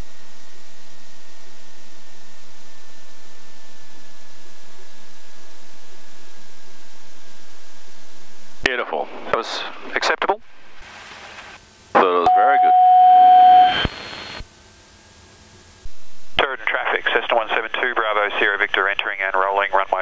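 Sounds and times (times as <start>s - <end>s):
telephone-like radio speech: 12.0s - 12.8s, 16.4s - 20.0s
loud steady tone: 12.0s - 14.4s.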